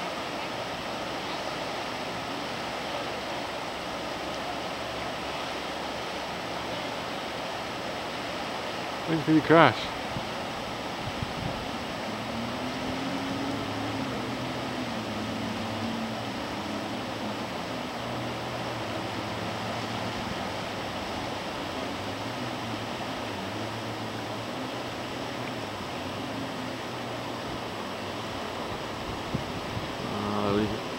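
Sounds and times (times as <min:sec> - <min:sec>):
distant jet ski engines droning: 0:00.0 - 0:30.9
river rapids rushing: 0:00.0 - 0:30.9.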